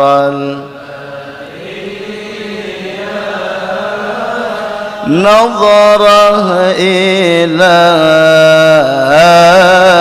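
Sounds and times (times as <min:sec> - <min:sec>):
man chanting into microphone: 0:00.0 - 0:10.0.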